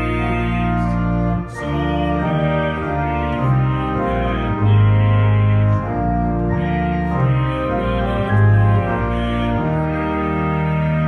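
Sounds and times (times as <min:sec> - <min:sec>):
low organ bass note: 0:00.0 - 0:11.0
organ playing sustained chords: 0:00.0 - 0:11.0.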